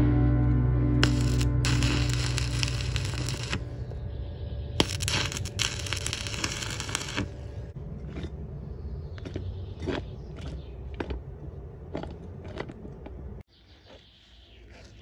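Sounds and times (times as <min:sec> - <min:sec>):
welder arc crackling: 0:01.0 - 0:03.9, 0:04.8 - 0:07.7.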